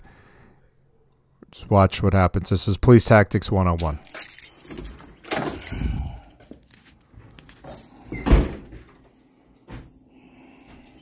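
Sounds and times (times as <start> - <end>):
light metallic jingle: 3.8 - 6.3, 10.6 - 11.0.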